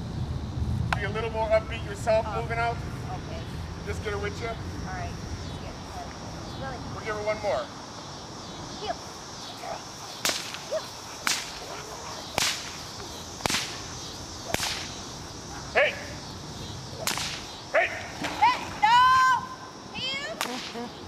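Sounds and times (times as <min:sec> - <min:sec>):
whip cracking: 0:10.2 - 0:15.0, 0:17.0 - 0:18.6, 0:20.3 - 0:20.8
loud high-pitched cries: 0:17.7 - 0:20.4.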